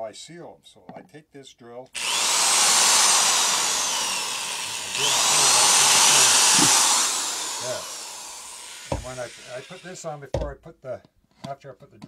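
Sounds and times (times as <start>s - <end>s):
electric drill boring plastic: 2.0s - 10.0s.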